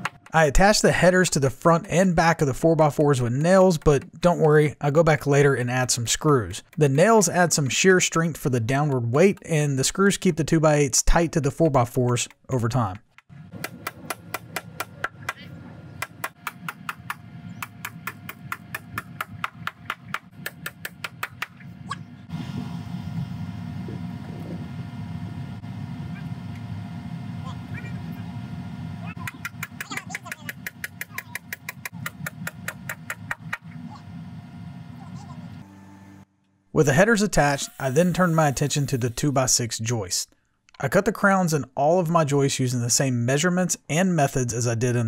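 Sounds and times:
steady low hum: 0.0 - 39.5.

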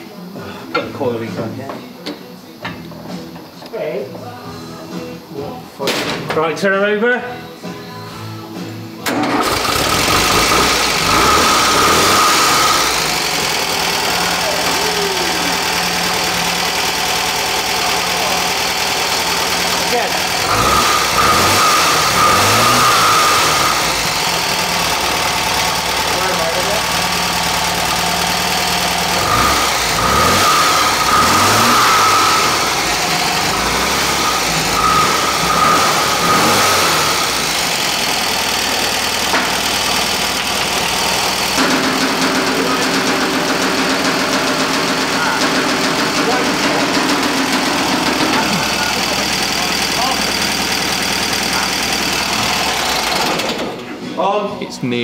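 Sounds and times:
engine cranking and revving: 9.0 - 54.0.

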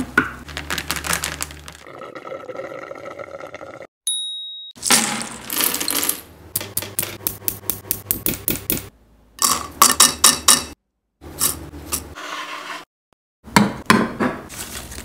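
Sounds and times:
milkshake pouring and fizzing: 1.8 - 3.9
short electronic ding: 4.1 - 4.8.

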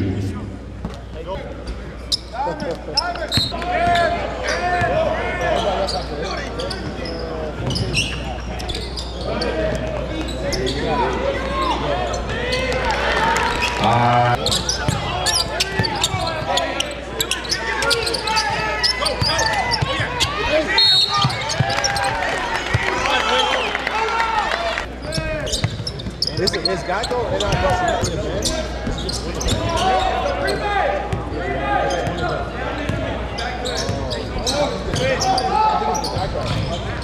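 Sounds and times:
voices of players and spectators: 0.0 - 37.0.

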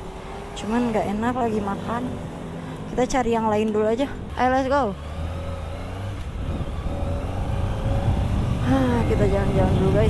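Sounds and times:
motorcycle engine accelerating: 0.0 - 10.0.

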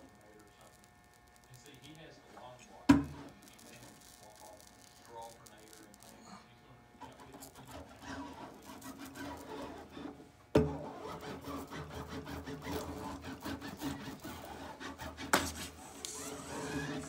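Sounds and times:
iron scraping on screen mesh: 7.0 - 17.0.

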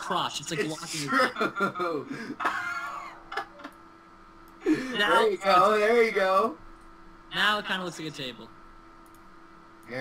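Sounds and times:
faint steady hum: 0.0 - 10.0
sharp clicks: 9.0 - 9.9.

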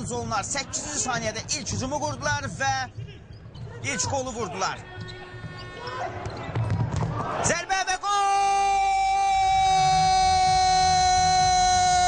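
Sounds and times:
ball kicked and bouncing: 6.2 - 7.2.

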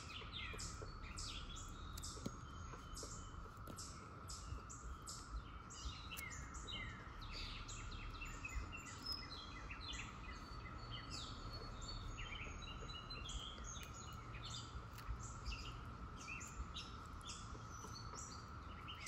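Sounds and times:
low background rumble: 0.0 - 19.0
songbirds chirping: 0.0 - 19.0
thin steady hum: 0.0 - 19.0.

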